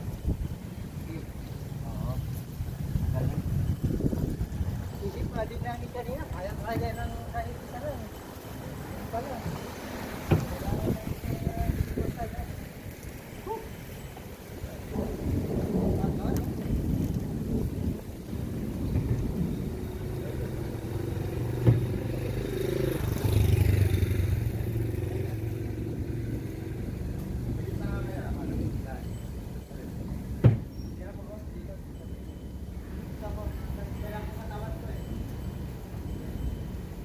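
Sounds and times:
sharp knocks: 21.6s - 22.0s, 30.4s - 30.7s.

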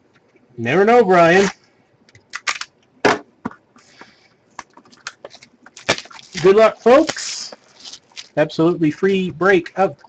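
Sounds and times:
plastic shrink wrap crinkling: 4.7s - 8.7s.

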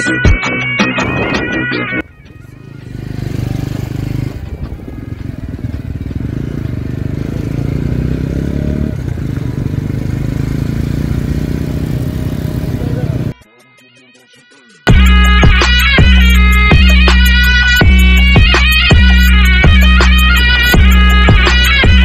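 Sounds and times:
motorcycle engine running: 2.0s - 13.4s
wind noise on microphone: 3.8s - 6.0s.

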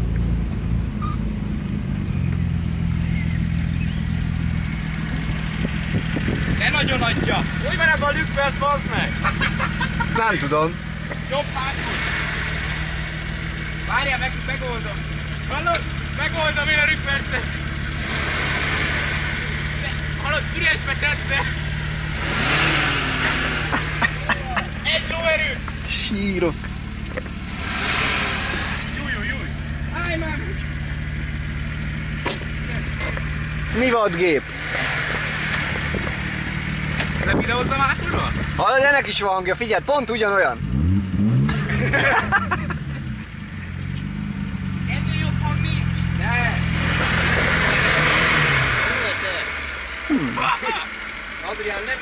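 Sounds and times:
car engine idling: 0.0s - 52.0s.

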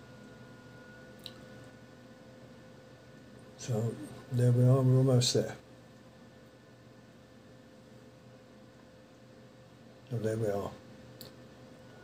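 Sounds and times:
thin whine: 0.0s - 8.8s, 10.1s - 12.0s
steady low hum: 0.0s - 12.0s
small click: 1.2s - 1.4s, 11.2s - 11.4s.

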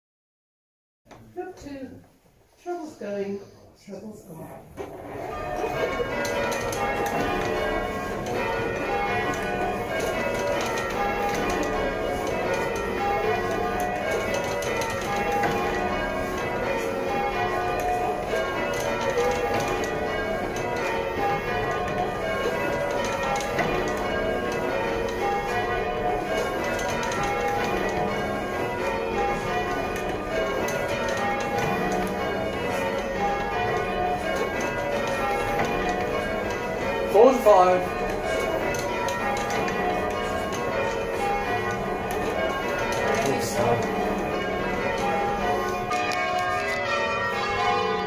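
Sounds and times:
church bells ringing: 4.7s - 48.0s.

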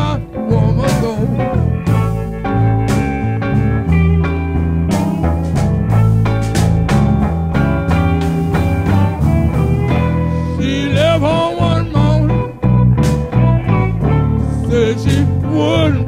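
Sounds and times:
electric blues band playing: 0.0s - 16.0s
wavering lead line: 0.0s - 16.0s.

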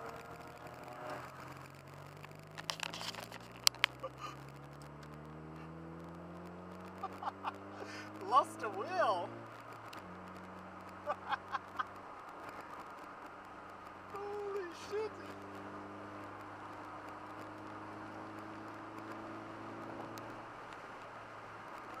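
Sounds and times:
car cabin drone on highway: 0.0s - 22.0s.

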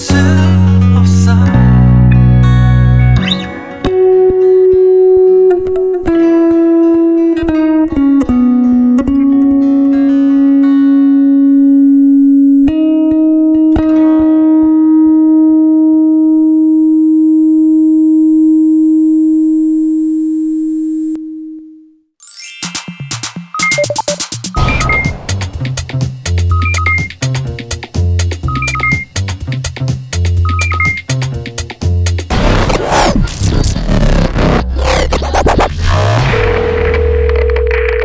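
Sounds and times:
electric bass guitar notes: 0.0s - 22.0s, 31.3s - 38.0s.

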